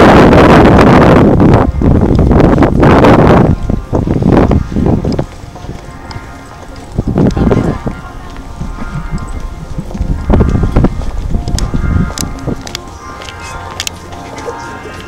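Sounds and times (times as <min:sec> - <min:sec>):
wind buffeting microphone: 0:00.0 - 0:15.0
faint music: 0:01.6 - 0:15.0
people's voices: 0:03.3 - 0:15.0.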